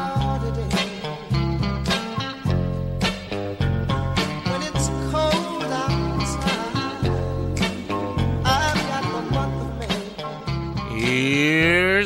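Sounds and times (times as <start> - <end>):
upbeat intro music: 0.1 - 12.0
cow moo sound effect rising in pitch: 10.9 - 12.0.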